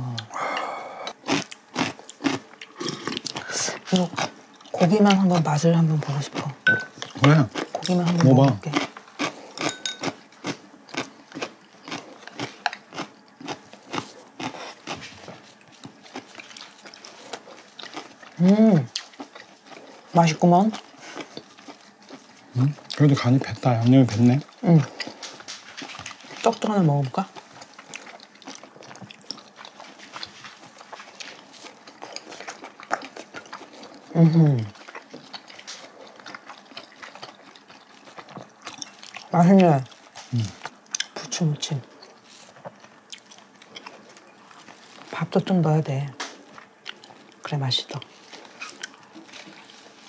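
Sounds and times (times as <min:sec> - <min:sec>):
chewing: 0:00.1 - 0:45.2, 0:46.1 - 0:50.0
chopsticks and tongs clicking on bowls: 0:09.6 - 0:10.2.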